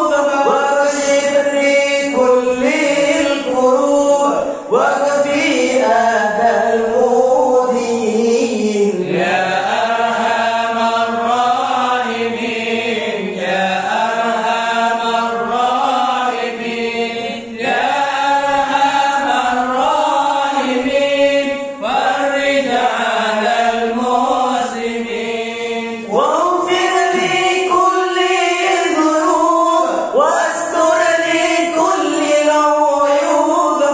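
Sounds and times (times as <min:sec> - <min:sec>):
men chanting a devotional song: 0:00.0 - 0:33.9.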